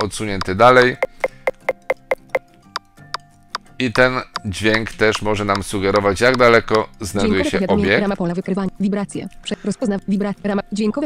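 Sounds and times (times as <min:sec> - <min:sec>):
short pitched alert ticks: 0:01.0 - 0:02.4.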